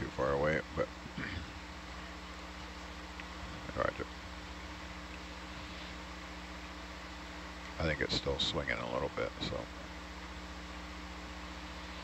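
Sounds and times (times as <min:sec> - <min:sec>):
low electrical hum: 0:00.0 - 0:12.0
microphone hiss: 0:00.0 - 0:12.0.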